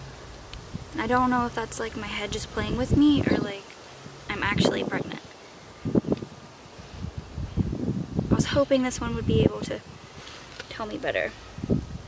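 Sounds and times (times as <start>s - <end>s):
wind buffeting microphone: 0.6s - 10.2s, 11.0s - 12.0s.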